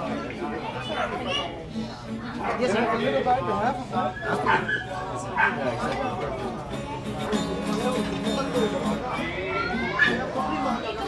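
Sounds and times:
people talking: 0.0s - 11.0s
dog yipping: 4.1s - 5.6s, 9.8s - 10.2s.

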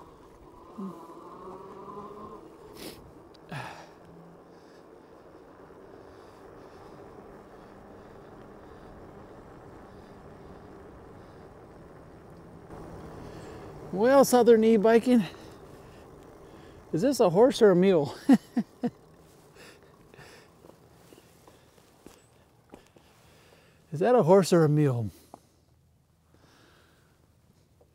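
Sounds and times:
electric motors whining: 0.0s - 23.1s.

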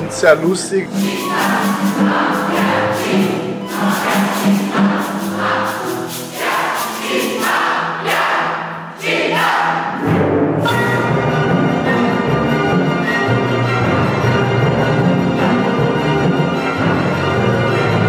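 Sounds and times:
orchestra with rhythmic accents: 0.0s - 18.0s
group voices: 0.9s - 10.0s.

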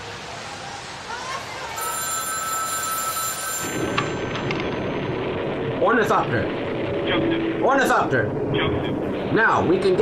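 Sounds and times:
street noise: 0.0s - 10.0s
payphone ringing: 1.8s - 4.9s.

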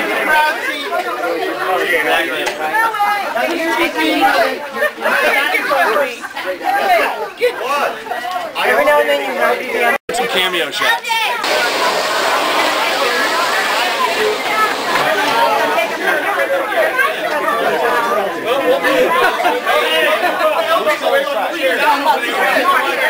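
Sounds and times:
people chattering: 0.0s - 23.0s.

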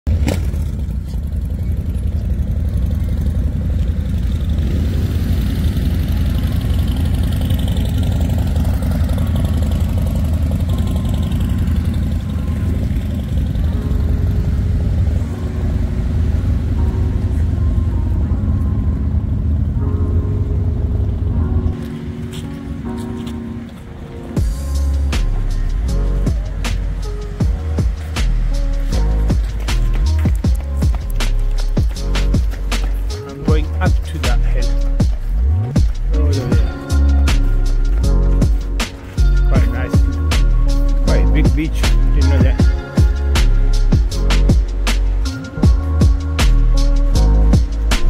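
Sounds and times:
background music: 4.0s - 48.0s
held melodic notes: 5.8s - 48.0s
deep low rumble: 24.4s - 48.0s.

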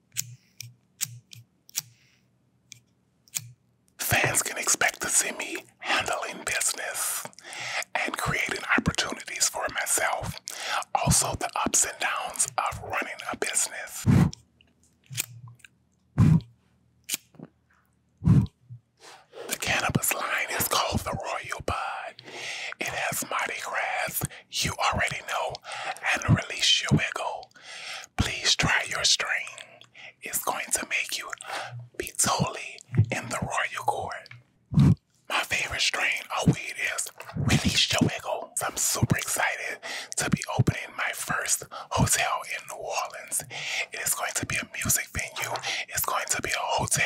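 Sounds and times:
person whispering into microphone: 4.0s - 14.3s, 18.3s - 47.0s.

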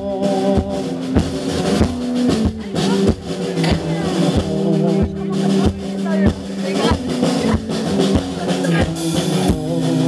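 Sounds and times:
drum kit beat: 0.0s - 10.0s
held guitar chords: 0.0s - 10.0s.

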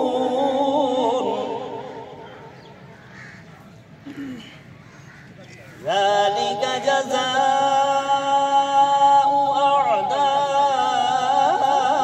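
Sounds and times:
crows cawing: 2.2s - 3.7s, 4.4s - 5.8s.

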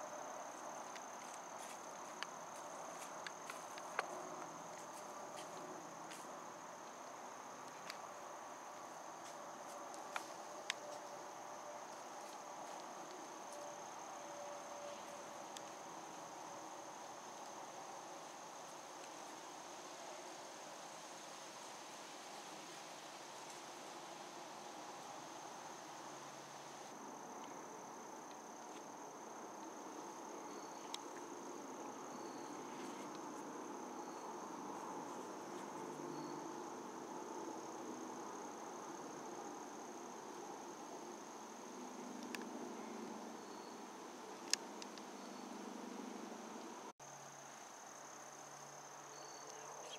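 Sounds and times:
crickets trilling: 0.0s - 49.9s.

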